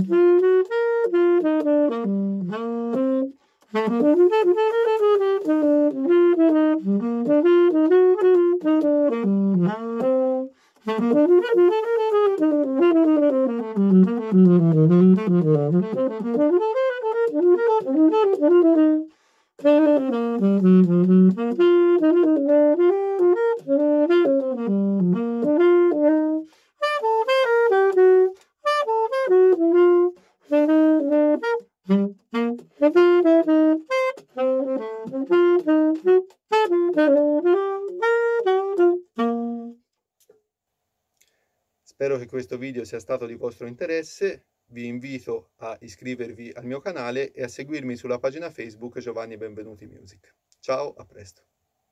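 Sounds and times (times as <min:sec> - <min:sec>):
tenor saxophone jazz: 0:00.0 - 0:40.0
saxophonist breathing: 0:03.3 - 0:03.8, 0:10.5 - 0:10.9, 0:19.0 - 0:19.6, 0:26.4 - 0:26.8, 0:30.1 - 0:30.5, 0:41.2 - 0:41.7.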